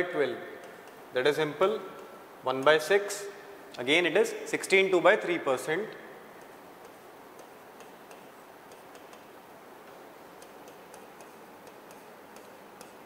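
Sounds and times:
low hiss: 0:00.0 - 0:13.0
chalk tapping on board: 0:00.6 - 0:01.1, 0:06.4 - 0:13.0.

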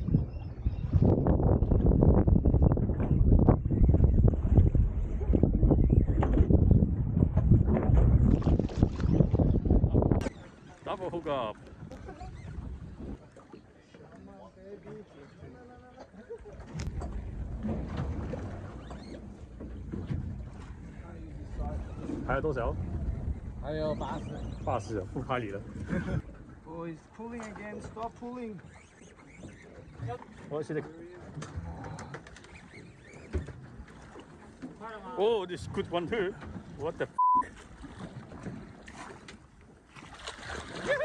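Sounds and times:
low wind: 0:00.0 - 0:41.0
water noise: 0:00.0 - 0:41.0.

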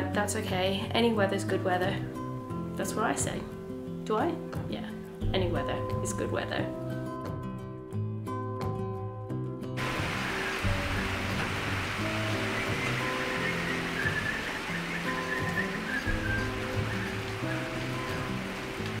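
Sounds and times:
music of sustained notes: 0:00.0 - 0:19.0
steady rain falling: 0:09.8 - 0:19.0.

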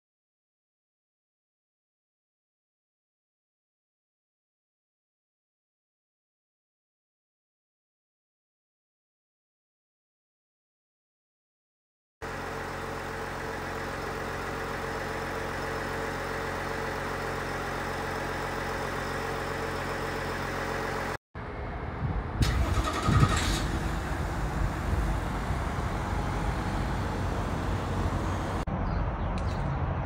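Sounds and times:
diesel truck engine running: 0:12.2 - 0:28.7.

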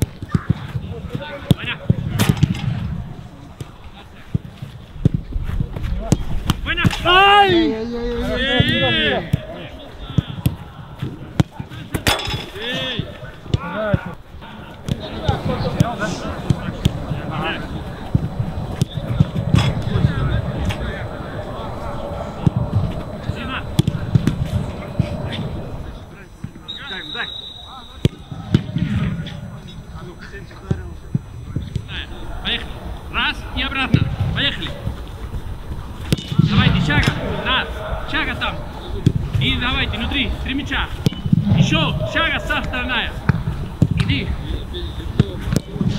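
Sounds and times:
players calling out: 0:06.8 - 0:45.9
football being kicked: 0:36.0 - 0:37.2.

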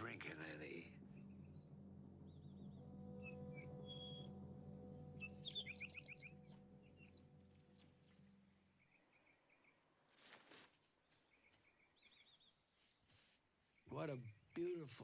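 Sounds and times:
bird chirps and trills: 0:00.0 - 0:10.0, 0:11.2 - 0:12.7
soft film score chords: 0:00.0 - 0:10.1, 0:13.8 - 0:15.0.

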